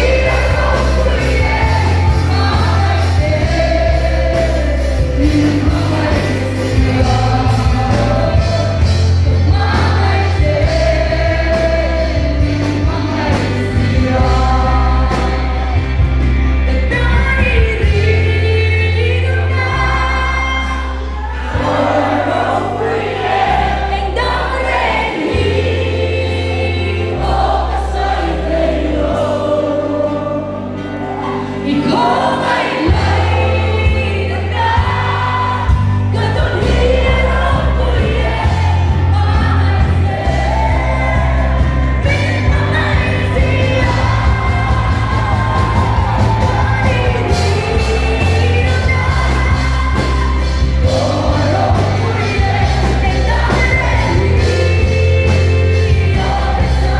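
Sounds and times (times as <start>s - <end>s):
band playing worship song: 0.0s - 56.9s
woman singing into microphone: 0.0s - 56.9s.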